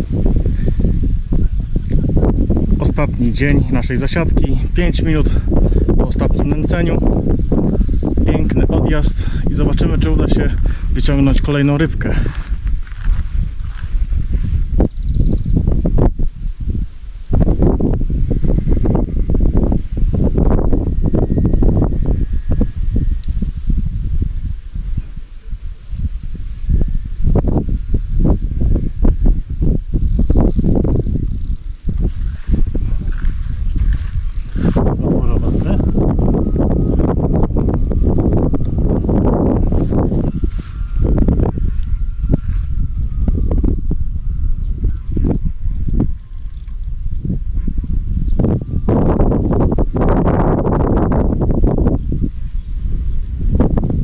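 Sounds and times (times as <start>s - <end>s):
wind buffeting microphone: 0.0s - 54.0s
fishing reel being wound: 29.4s - 35.2s, 40.2s - 47.4s.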